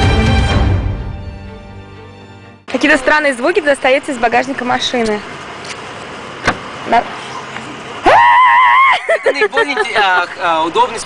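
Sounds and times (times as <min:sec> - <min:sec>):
moving car noise: 0:02.7 - 0:11.0.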